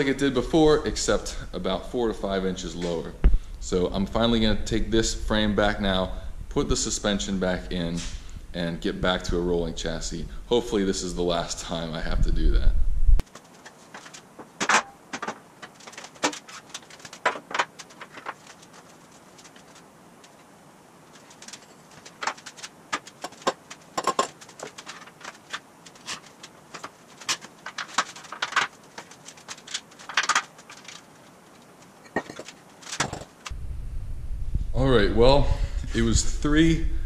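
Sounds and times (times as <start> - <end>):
metallic clinks and knocks: 21.2 - 31.0, 32.0 - 33.5.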